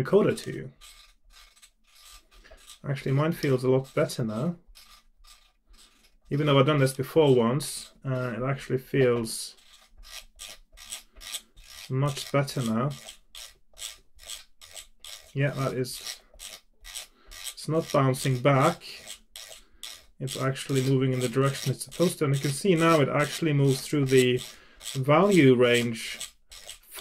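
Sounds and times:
metal knob rubbing strokes: 0.1s - 8.4s, 9.0s - 27.0s.

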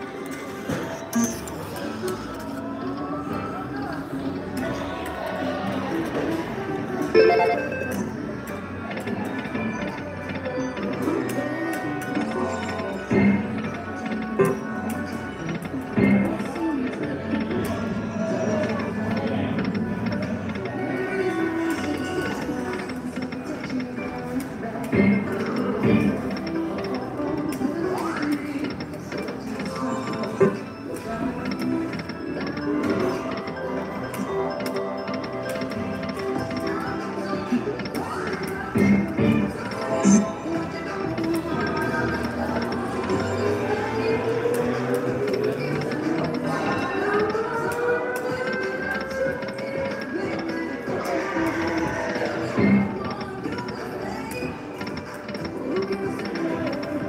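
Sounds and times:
slot machine spin music: 0.0s - 57.0s
casino floor din: 7.0s - 14.6s, 21.8s - 57.0s.

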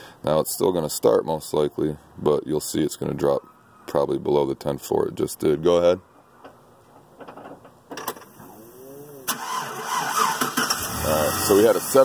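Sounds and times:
starter motor click: 9.3s - 11.0s.

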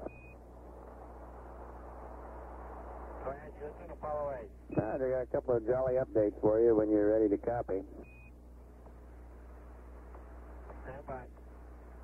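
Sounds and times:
radio hiss and hum: 0.0s - 12.0s.

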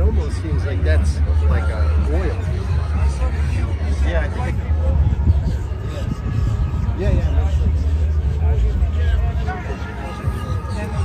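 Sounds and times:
people talking: 0.0s - 11.0s
steady low rumble: 0.0s - 11.0s.

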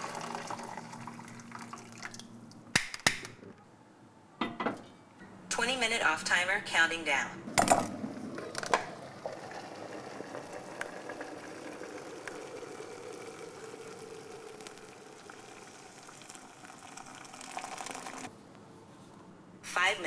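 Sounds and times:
liquid bubbling in a pot: 8.3s - 18.3s.

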